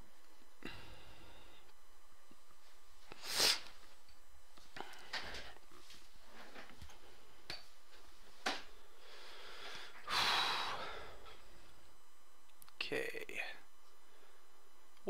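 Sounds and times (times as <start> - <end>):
congested nose sniffing: 3.1 - 3.7.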